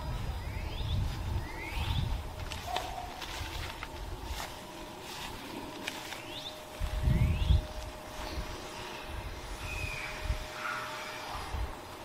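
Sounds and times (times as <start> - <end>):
birds chirping: 0.0 - 3.2, 4.0 - 12.0
faint steady hum: 0.0 - 12.0.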